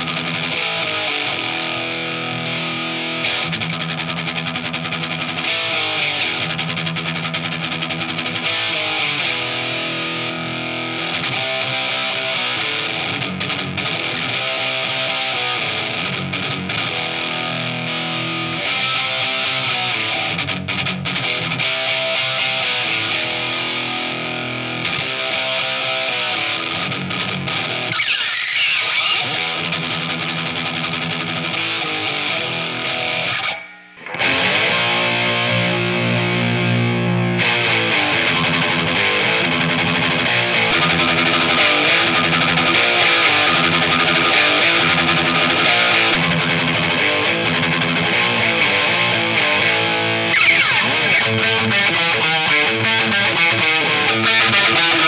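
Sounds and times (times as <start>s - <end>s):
distorted electric guitar riff: 0.0s - 55.0s.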